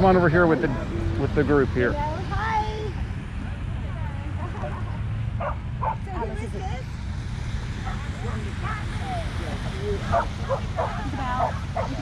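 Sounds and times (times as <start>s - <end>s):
people's voices: 0.0s - 12.0s
steady low rumble: 0.0s - 12.0s
dog barking: 5.4s - 6.1s, 7.8s - 8.4s, 10.1s - 12.0s.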